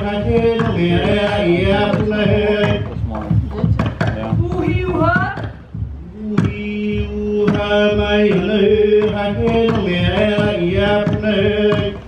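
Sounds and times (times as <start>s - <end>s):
gourd drum strokes: 0.0s - 12.0s.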